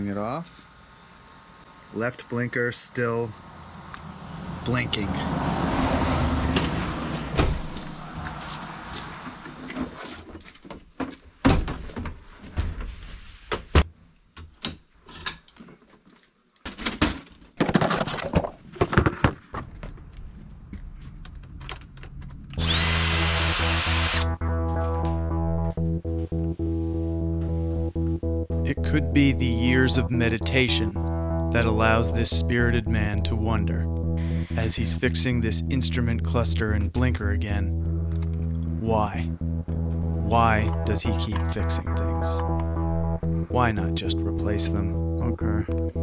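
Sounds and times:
small power tool whirring: 22.6 - 24.3
music with steady bass: 22.6 - 46.0.

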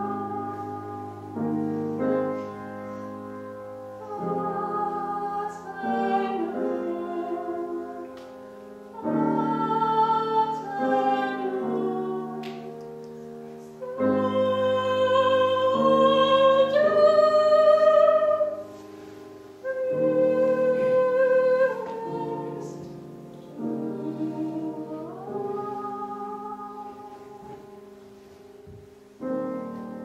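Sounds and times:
woman singing classical style: 0.0 - 12.8, 13.6 - 27.8
piano accompaniment: 0.0 - 30.0.

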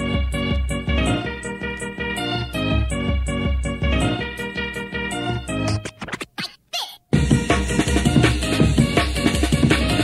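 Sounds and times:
choppy scratch-like cuts: 5.6 - 10.0
hardcore rave music: 7.1 - 10.0.

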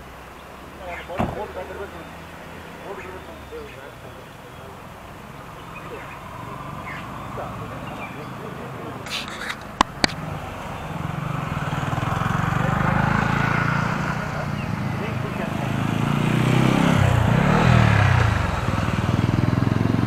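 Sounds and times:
vehicle engines droning: 0.0 - 20.0
vehicle passing by: 0.0 - 20.0.

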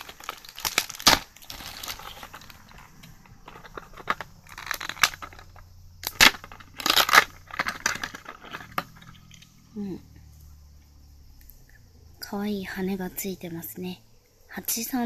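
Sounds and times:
plastic bag crinkling: 0.0 - 9.1.

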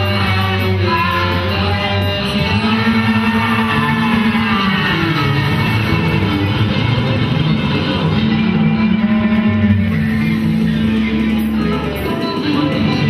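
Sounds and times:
boy singing into microphone: 0.0 - 6.1
electric guitar: 0.0 - 13.0
electronic drum kit: 0.0 - 13.0.

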